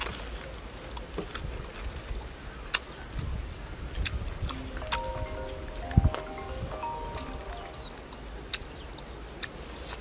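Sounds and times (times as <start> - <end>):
mouth chewing crunchy fruit: 0.0 - 5.1, 8.1 - 10.0
wind rumble on microphone: 3.0 - 4.5.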